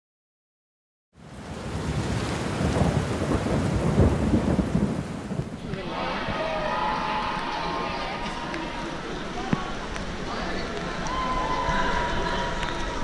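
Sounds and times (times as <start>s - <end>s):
heavy rain: 1.2s - 13.0s
thunder rumble: 1.4s - 7.0s.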